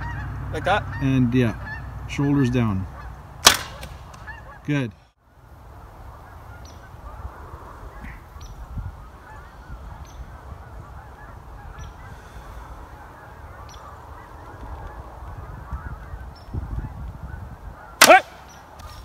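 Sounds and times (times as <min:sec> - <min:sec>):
geese honking: 0:00.0 - 0:05.1, 0:05.8 - 0:19.0
wind rumbling on microphone: 0:05.2 - 0:19.0.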